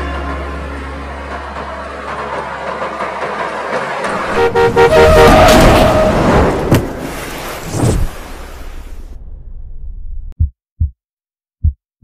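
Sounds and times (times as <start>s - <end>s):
rushing roar: 3.1s - 7.2s
vehicle horn honking: 4.2s - 6.2s.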